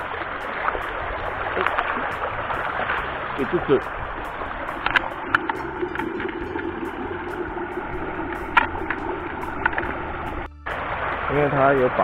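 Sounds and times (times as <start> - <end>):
stream water rushing: 0.0 - 12.0.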